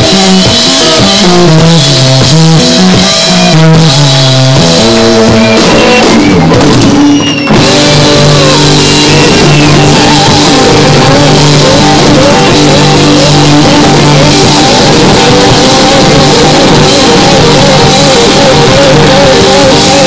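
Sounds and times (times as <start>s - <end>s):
live rock band playing: 0.0s - 20.0s.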